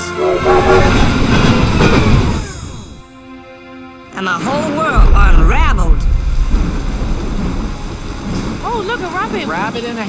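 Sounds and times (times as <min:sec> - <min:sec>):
train rushing past: 0:00.0 - 0:03.2, 0:04.2 - 0:10.0.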